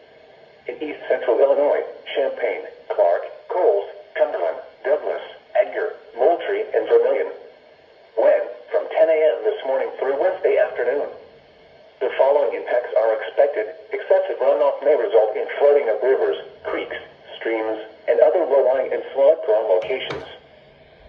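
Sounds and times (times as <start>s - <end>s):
announcer voice through radio speaker: 12.0s - 20.4s.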